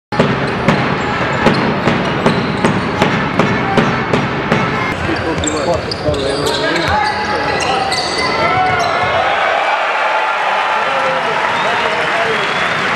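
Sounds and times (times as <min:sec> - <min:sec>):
basketball bouncing on wooden floor: 0:00.2 - 0:06.2.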